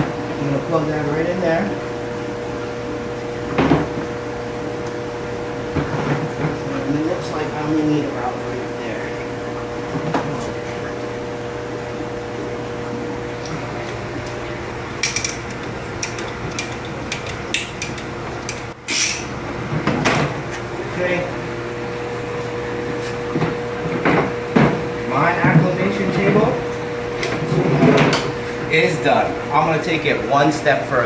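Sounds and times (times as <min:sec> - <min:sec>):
steady hum: 0:00.0 - 0:31.0
ratcheting tubing cutter clicking: 0:15.0 - 0:19.2.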